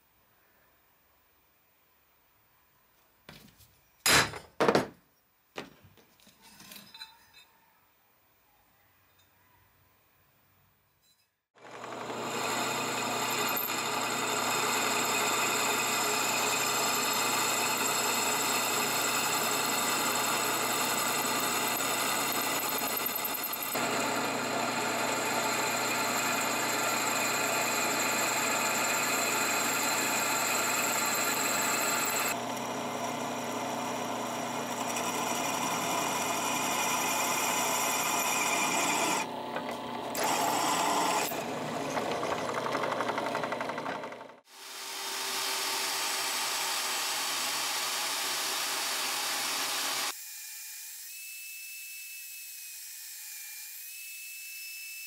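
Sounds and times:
drill press boring steel: 11.6s - 50.2s.

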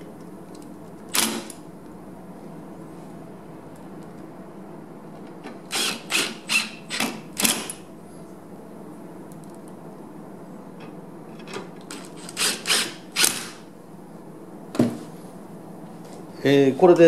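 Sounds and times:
screwdriver driving screws: 5.7s - 7.7s, 11.9s - 13.6s.

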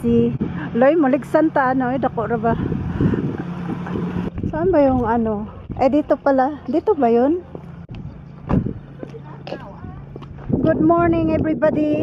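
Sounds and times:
vehicle engine idling: 0.0s - 10.6s.

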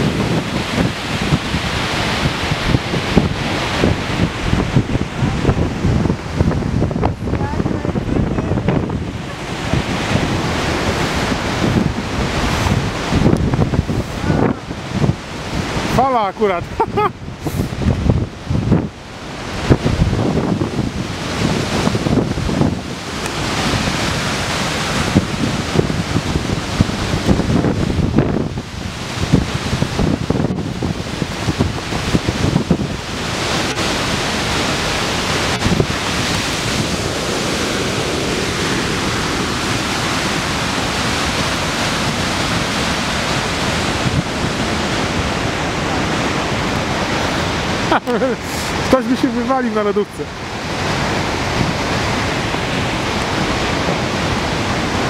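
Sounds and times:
waterfall rushing: 0.0s - 55.0s
wind buffeting microphone: 0.0s - 55.0s.

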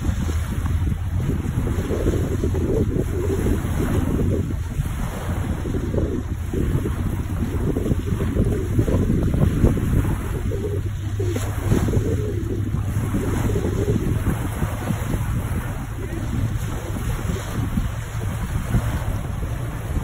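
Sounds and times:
waves washing onto pebbles: 0.0s - 20.0s
wind buffeting microphone: 0.0s - 20.0s.

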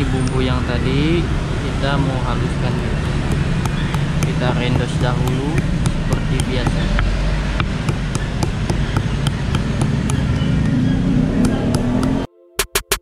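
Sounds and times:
stone pestle grinding and cracking: 2.8s - 12.3s.

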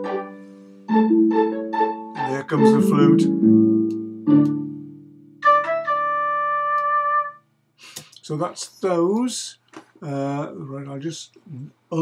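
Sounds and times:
flute long note: 2.2s - 3.2s.

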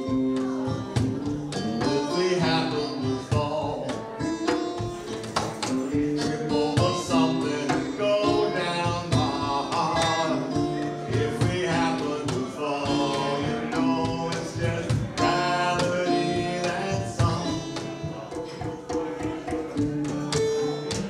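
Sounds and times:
acoustic guitar strumming: 0.0s - 21.0s
man singing: 0.0s - 21.0s.

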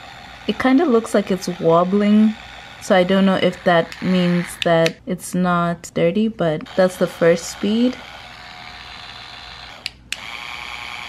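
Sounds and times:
facial brush motor humming: 0.0s - 5.0s, 6.6s - 11.0s.

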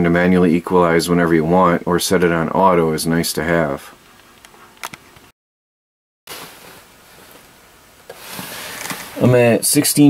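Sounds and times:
faint room hiss: 6.3s - 10.0s.

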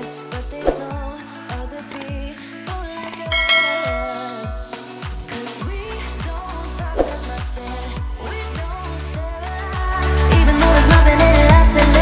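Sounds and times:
pop music with steady beat: 0.0s - 12.0s
notification bell chime: 3.3s - 4.8s.

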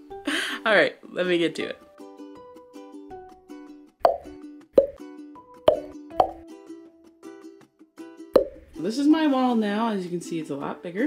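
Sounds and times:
cartoon pop sound effects: 4.0s - 5.0s, 5.7s - 6.4s, 8.4s - 8.7s.

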